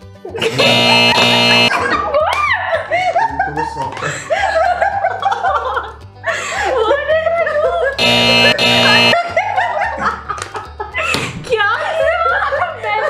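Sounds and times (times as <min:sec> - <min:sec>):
background music with bass line: 0:00.0 - 0:01.7, 0:08.0 - 0:09.2
women laughing: 0:00.3 - 0:08.0, 0:09.2 - 0:11.2, 0:11.8 - 0:13.0
loud held tone: 0:00.5 - 0:01.7, 0:08.0 - 0:09.2.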